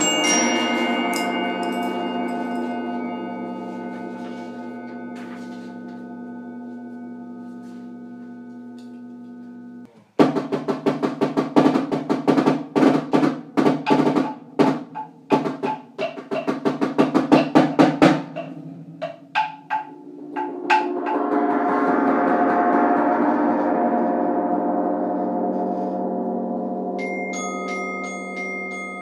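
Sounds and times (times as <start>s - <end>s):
rapid drum strokes: 0.0s - 6.4s, 10.2s - 27.0s
gong-like ringing tone: 0.0s - 9.9s, 19.9s - 29.0s.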